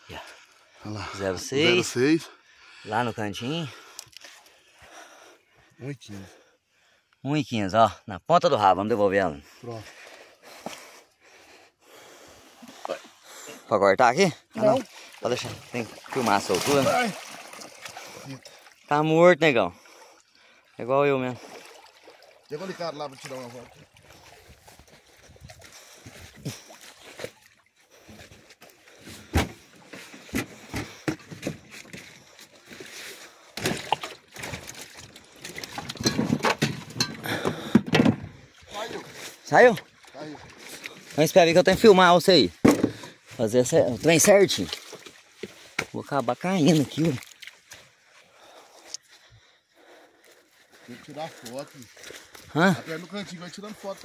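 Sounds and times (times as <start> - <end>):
person breathing: 2.3 - 3.0, 3.6 - 7.2, 9.4 - 13.7, 24.0 - 27.1, 37.2 - 39.2, 48.1 - 52.5
river water splashing: 14.5 - 19.1, 19.7 - 29.1, 31.7 - 37.4, 38.4 - 41.5, 44.0 - 46.0, 46.6 - 49.0
sharp knocks and clatters: 35.8 - 38.3.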